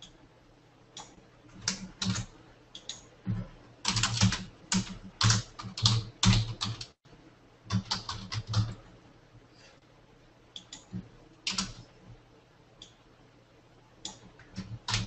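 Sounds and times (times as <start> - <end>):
typing on computer keyboard: 1.0 - 7.0, 7.7 - 8.8, 10.6 - 11.9, 14.1 - 15.0.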